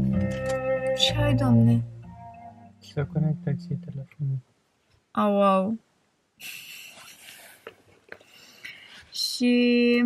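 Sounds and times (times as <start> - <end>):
woman breathing softly: 8.2 - 9.1.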